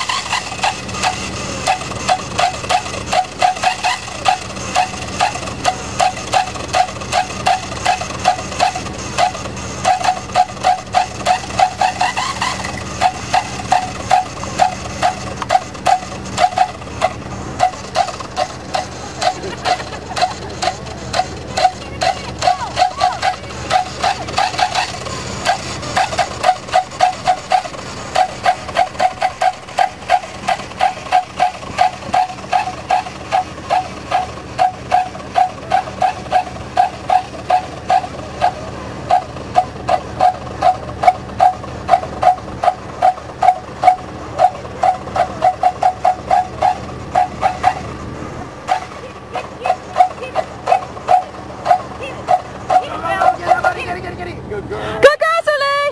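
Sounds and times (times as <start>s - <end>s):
dog barking: 0.4s - 47.9s, 48.7s - 53.8s.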